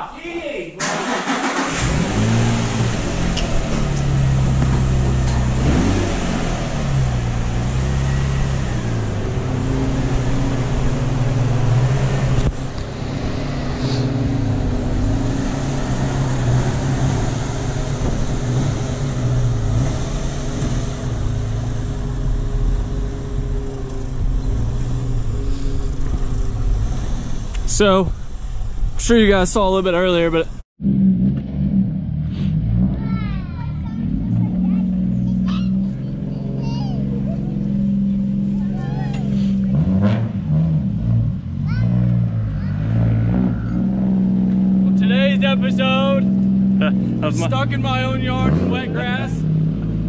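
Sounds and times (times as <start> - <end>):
car engine idling: 0.8 - 30.5, 33.2 - 39.8, 41.4 - 50.0.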